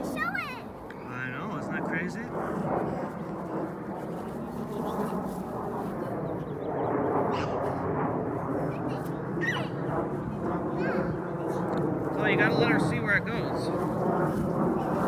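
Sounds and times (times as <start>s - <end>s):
distant jet airliner rumble: 0.0s - 15.0s.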